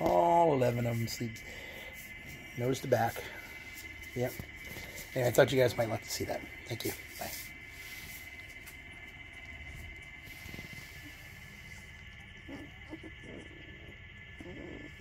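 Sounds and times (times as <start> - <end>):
puppies grunting and whimpering: 9.9 - 15.0.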